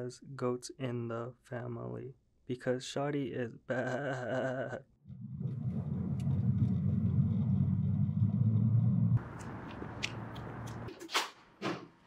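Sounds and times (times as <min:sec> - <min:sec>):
car engine and road rumble: 0:06.4 - 0:10.9.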